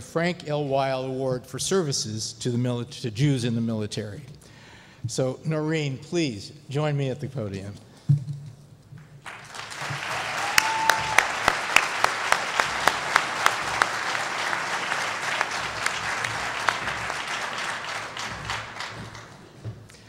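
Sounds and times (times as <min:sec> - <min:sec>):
audience applauding: 0:09.2 - 0:20.0
hands clapping sharply nearby: 0:09.2 - 0:20.0.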